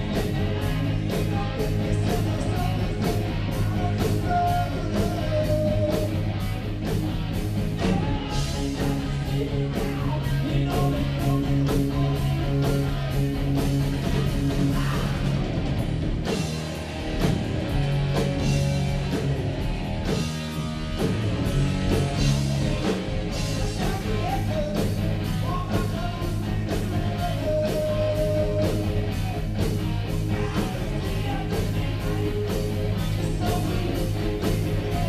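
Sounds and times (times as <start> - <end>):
bass guitar: 0.0 - 35.0
drum kit beat: 0.0 - 35.0
electric guitar: 0.0 - 35.0.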